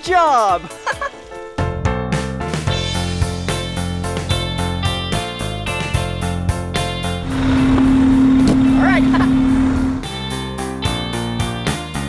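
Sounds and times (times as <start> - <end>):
truck moving off: 6.8 - 10.3
fire engine horn blast: 7.2 - 10.1.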